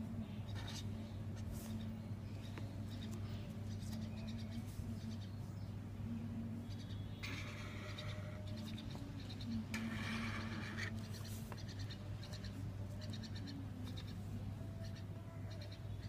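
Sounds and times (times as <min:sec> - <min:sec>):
steady low hum: 0:00.0 - 0:16.0
marker scratching on paper: 0:09.8 - 0:13.2.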